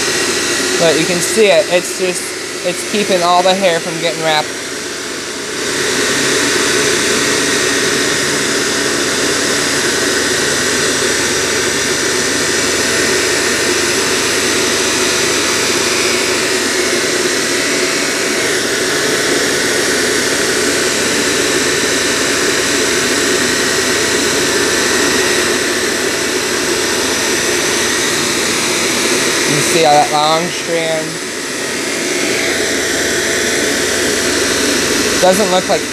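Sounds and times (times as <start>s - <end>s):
upright vacuum running on rug: 0.0s - 35.9s.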